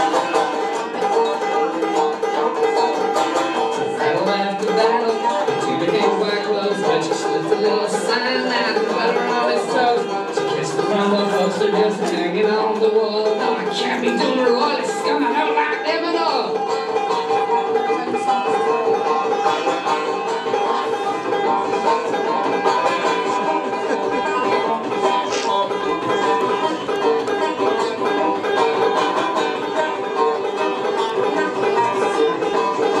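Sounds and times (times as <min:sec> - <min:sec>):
banjo picking: 0:00.0 - 0:33.0.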